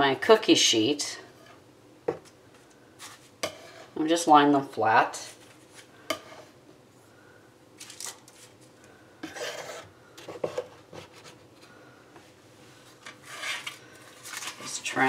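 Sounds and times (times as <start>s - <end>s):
knife scraping and tapping: 3.0s - 3.9s, 6.1s - 6.5s, 9.2s - 11.3s.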